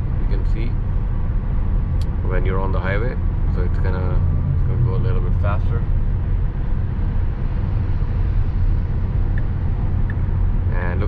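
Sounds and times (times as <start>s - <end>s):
tyre and road rumble in car: 0.0s - 11.0s.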